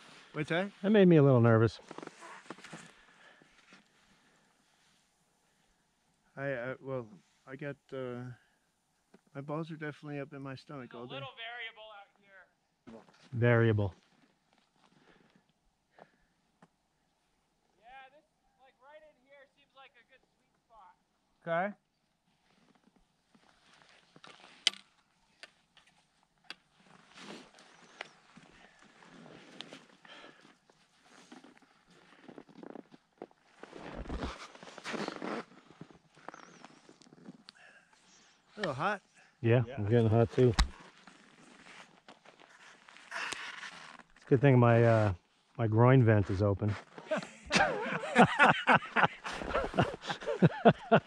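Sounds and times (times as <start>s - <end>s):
skis crunching on crusty snow: 1.8s - 5.0s, 26.7s - 37.3s, 40.0s - 44.2s, 49.2s - 51.0s
people laughing heartily: 47.0s - 51.0s.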